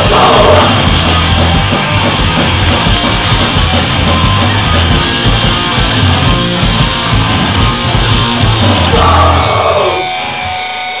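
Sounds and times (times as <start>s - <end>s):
drum beat: 0.0s - 9.8s
distorted electric guitar chord: 0.0s - 11.0s.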